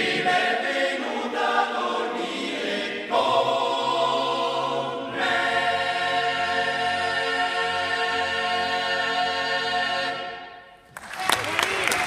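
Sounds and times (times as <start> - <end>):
male choir singing a cappella: 0.0 - 10.6.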